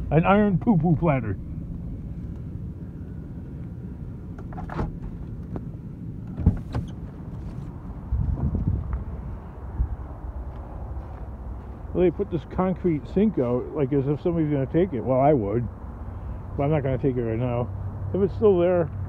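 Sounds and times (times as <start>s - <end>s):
truck engine running: 0.0s - 19.0s.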